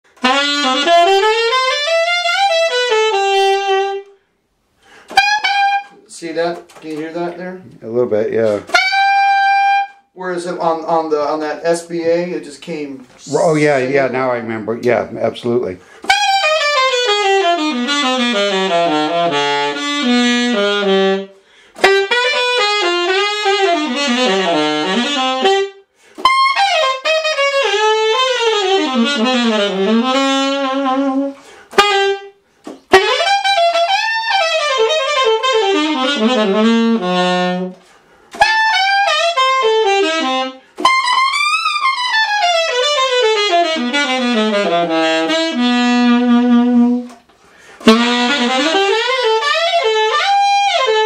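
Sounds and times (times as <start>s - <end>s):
alto saxophone playing: 0.1s - 7.4s, 8.5s - 12.0s, 15.8s - 51.0s.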